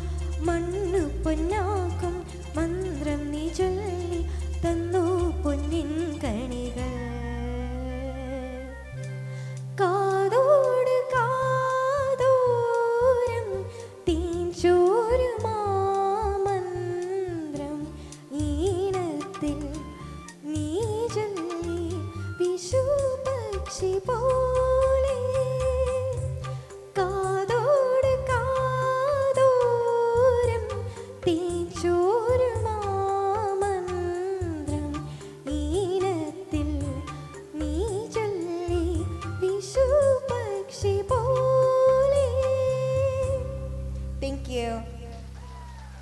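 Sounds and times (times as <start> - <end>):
woman singing into microphone: 0.0 - 8.8, 9.5 - 45.7
instrumental accompaniment: 0.0 - 46.0.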